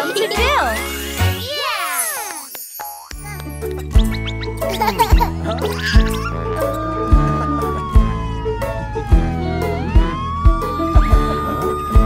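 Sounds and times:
upbeat children's song: 0.0 - 5.9
siren sound effect: 6.5 - 12.0
kick drum: 10.0 - 11.3.

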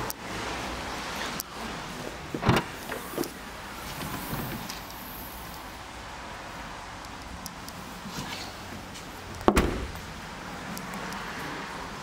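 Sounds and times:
tailgate knocks: 2.4 - 2.8, 9.4 - 10.0
car tailgate latch clunk: 2.4 - 3.0, 9.4 - 10.0.

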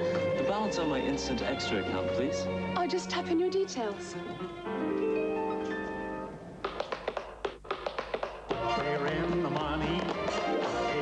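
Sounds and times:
music: 0.0 - 7.6, 8.3 - 11.0.

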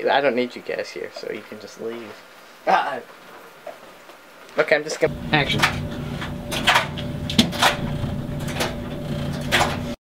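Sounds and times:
low machine hum: 5.1 - 10.0.

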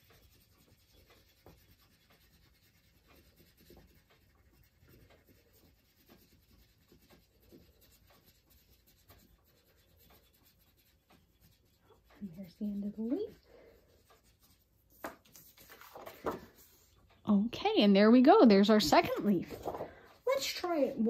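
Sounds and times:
crayon scratching on card: 0.0 - 17.0, 18.9 - 21.0.

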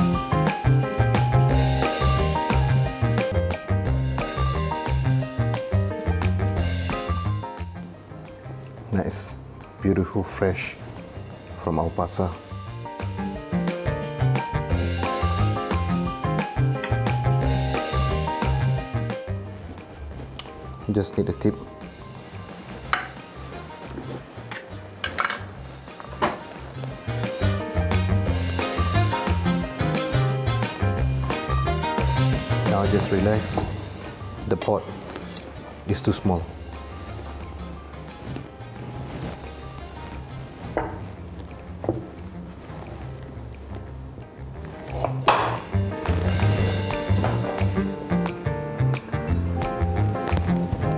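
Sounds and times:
background music with bass line: 0.0 - 50.9
knife striking wooden cutting board: 45.0 - 45.7.

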